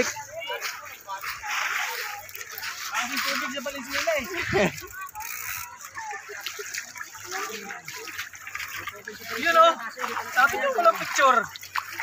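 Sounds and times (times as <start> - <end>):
people talking: 0.0 - 12.0
stream water splashing: 0.0 - 12.0.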